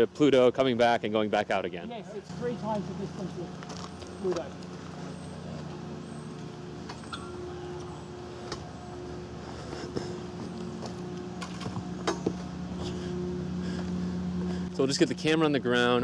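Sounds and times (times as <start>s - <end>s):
low machinery hum: 0.0s - 16.0s
footsteps: 2.2s - 7.1s, 7.8s - 14.7s.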